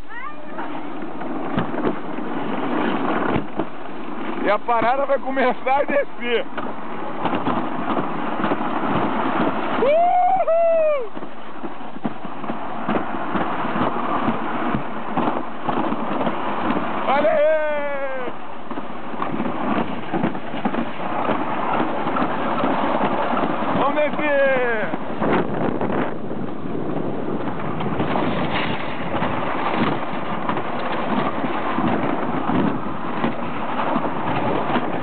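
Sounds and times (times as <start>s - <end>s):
toboggan sled rumbling and rattling: 0.0s - 35.0s.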